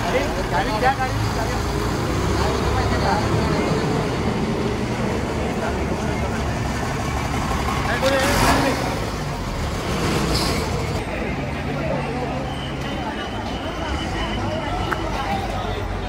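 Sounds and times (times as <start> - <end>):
bus engines rumbling: 0.0 - 16.0
people's voices: 0.0 - 16.0.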